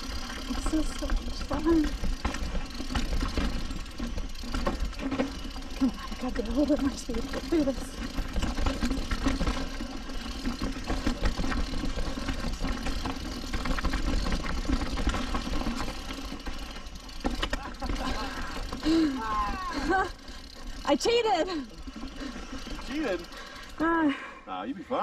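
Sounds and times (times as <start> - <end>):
bike rattling over rocks: 0.0 - 24.0.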